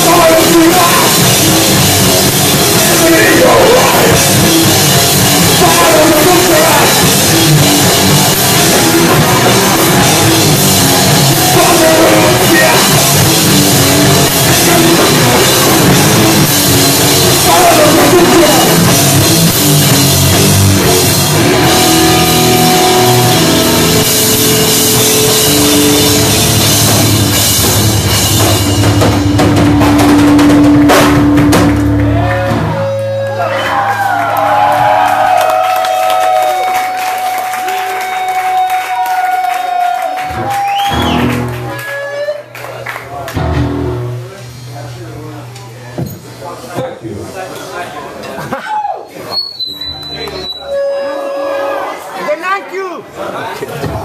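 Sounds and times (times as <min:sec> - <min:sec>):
band's last chord: 0:00.0 - 0:33.5
drum kit: 0:00.0 - 0:42.0, 0:42.6 - 0:46.8
electric guitar: 0:00.0 - 0:44.8
bass guitar: 0:00.0 - 0:46.6
crowd voices and shouts: 0:00.0 - 0:54.0.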